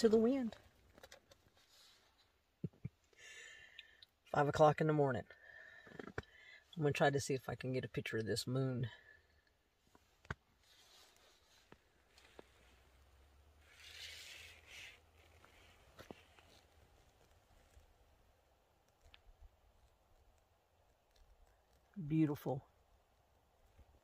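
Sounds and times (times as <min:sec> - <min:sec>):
soft rustle: 0:00.0 - 0:02.6, 0:08.9 - 0:24.0.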